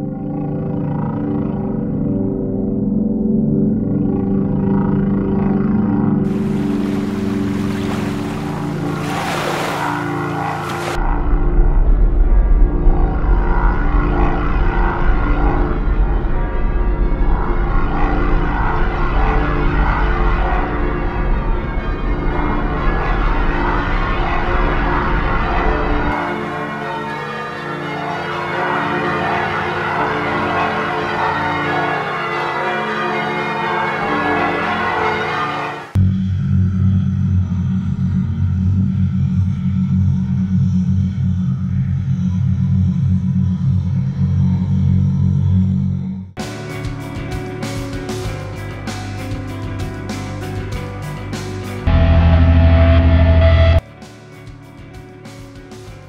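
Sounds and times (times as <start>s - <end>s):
low drone of held tones: 0.0s - 46.4s, 51.8s - 53.8s
rushing water-like noise: 6.3s - 11.0s
low rumble: 11.0s - 26.2s, 51.9s - 53.8s.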